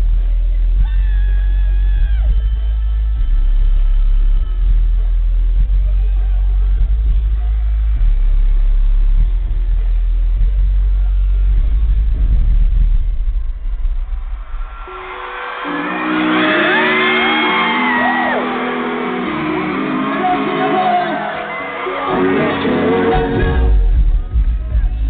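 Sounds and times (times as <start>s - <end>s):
live pop music through pa: 12.7s - 25.0s
audience screaming: 14.2s - 23.8s.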